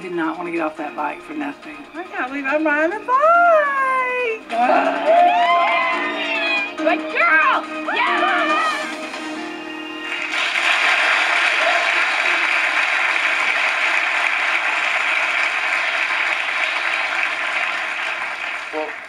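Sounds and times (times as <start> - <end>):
music: 0.0 - 19.0
studio audience applauding: 4.5 - 6.8, 7.4 - 19.0.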